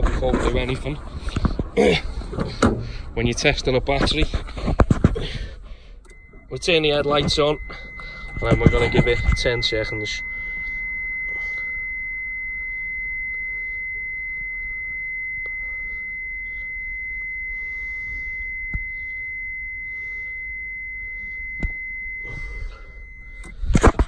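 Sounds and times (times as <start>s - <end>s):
high-pitched warning buzzer: 6.0s - 24.0s.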